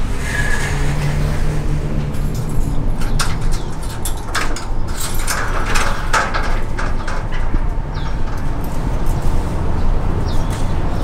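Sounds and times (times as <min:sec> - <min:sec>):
sliding door and grille clattering: 0:00.0 - 0:11.0
steady low rumble: 0:00.0 - 0:11.0
bird chirp: 0:09.1 - 0:11.0.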